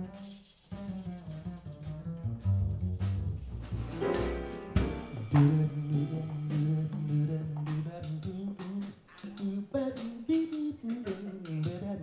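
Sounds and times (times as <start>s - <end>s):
upright double bass: 0.0s - 8.8s
drum and cymbal strikes: 0.0s - 11.8s
man singing wordless melody: 4.9s - 12.0s.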